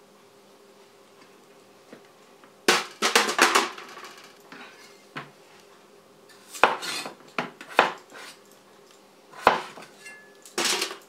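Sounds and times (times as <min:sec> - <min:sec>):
cleaver chopping on wooden board: 0:06.6 - 0:08.0, 0:09.4 - 0:09.8.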